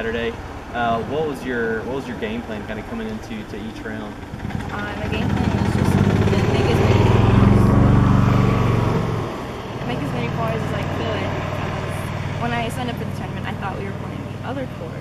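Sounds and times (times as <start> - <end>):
engine droning: 0.0 - 15.0
girl speaking: 9.9 - 15.0.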